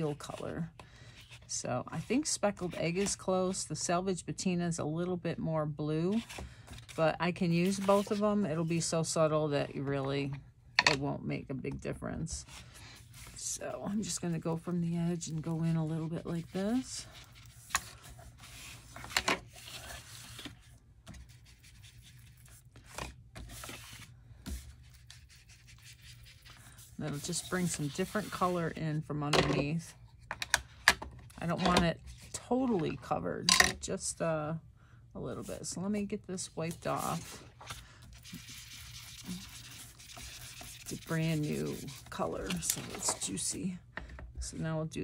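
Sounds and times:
paper rubbing and rustling: 0:07.6 - 0:08.2, 0:15.2 - 0:28.7, 0:36.7 - 0:43.2
foam tool rubbing on card: 0:38.1 - 0:42.2.

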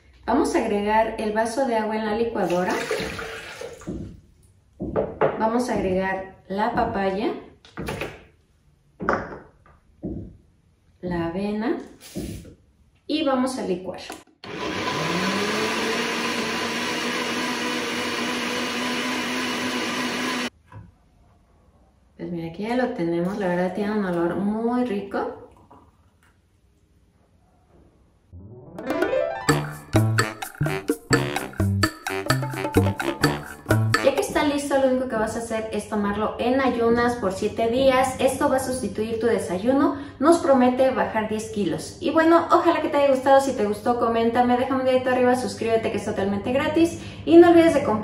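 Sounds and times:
water pouring into blender jar: 0:02.4 - 0:03.8
plucked string music: 0:28.4 - 0:34.2.

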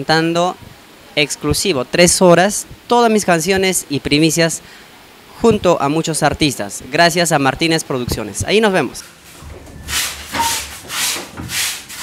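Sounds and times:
wet fabric scrubbed by hand: 0:09.0 - 0:12.0.

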